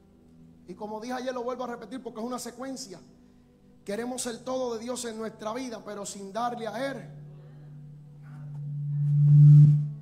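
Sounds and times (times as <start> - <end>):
person preaching: 3.9 - 7.1
low sustained keyboard note: 6.9 - 10.0.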